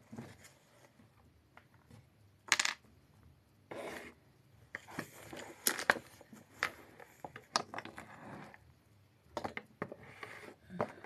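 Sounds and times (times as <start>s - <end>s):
scraping and rubbing noises: 3.7s - 4.2s, 4.8s - 8.7s, 9.8s - 11.0s.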